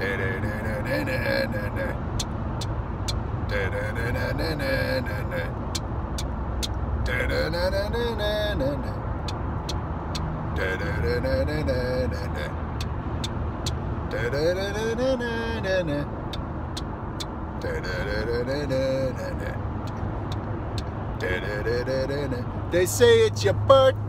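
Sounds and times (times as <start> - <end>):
man singing wordless phrases: 0.0 - 2.0, 3.5 - 5.6, 7.0 - 9.0, 10.6 - 12.6, 14.1 - 16.2, 17.6 - 20.0, 20.8 - 24.0
car engine and road noise: 0.0 - 24.0.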